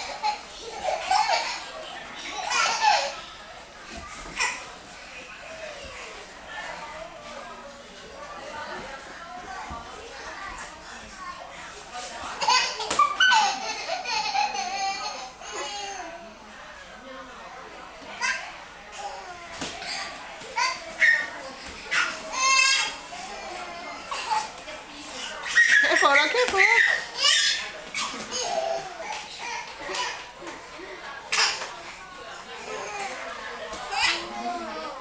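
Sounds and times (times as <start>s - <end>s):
babies squealing and babbling: 18.2s - 24.5s, 25.2s - 30.2s.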